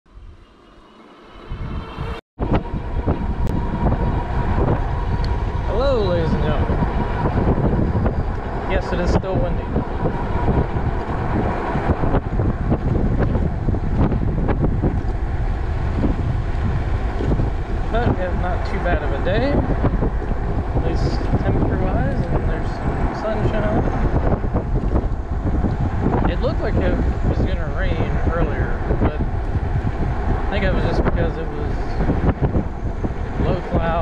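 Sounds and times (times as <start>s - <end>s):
wind buffeting microphone: 1.4s - 34.0s.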